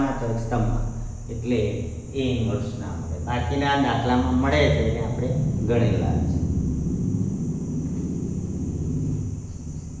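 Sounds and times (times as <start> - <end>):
faint high hiss: 0.0 - 10.0
low background rumble: 0.0 - 10.0.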